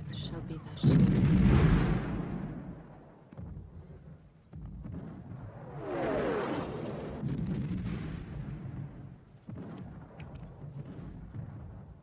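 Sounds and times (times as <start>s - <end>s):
artillery shell explosion: 0.8s - 3.0s.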